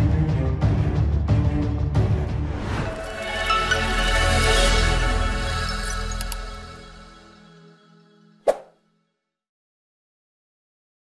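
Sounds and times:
outro music: 0:01.8 - 0:08.4.

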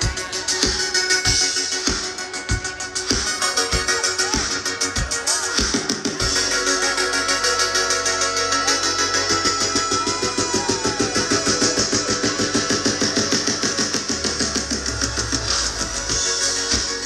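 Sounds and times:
bass line: 0:00.0 - 0:17.0
drum kit beat: 0:00.0 - 0:17.0
electronic dance music: 0:00.0 - 0:17.0
held synth chords: 0:00.0 - 0:17.0.

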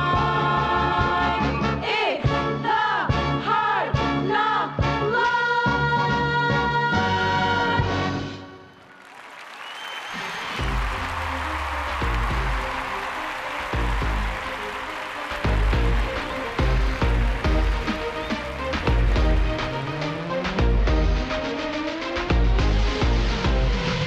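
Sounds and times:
audience applause: 0:08.7 - 0:21.1
music with heavy bass beat: 0:15.4 - 0:24.0.

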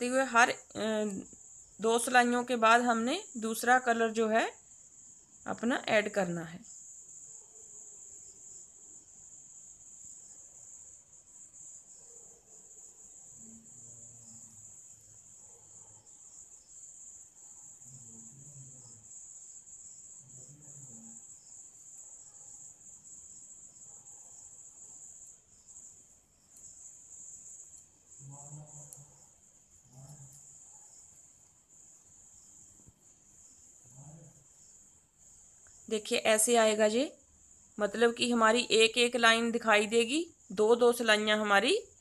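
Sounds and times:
high-pitched insect trill: 0:00.0 - 0:42.0.

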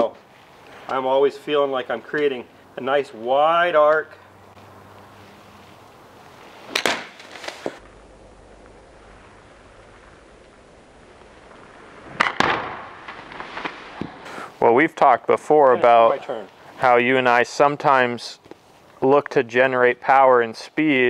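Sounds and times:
golf club striking ball: 0:06.7 - 0:07.3.

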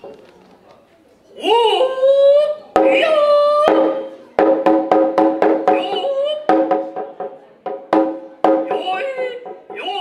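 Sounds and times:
drummer's shouted calls: 0:02.8 - 0:04.2, 0:05.4 - 0:07.2, 0:07.9 - 0:10.0
taiko drum strikes: 0:02.8 - 0:10.0.

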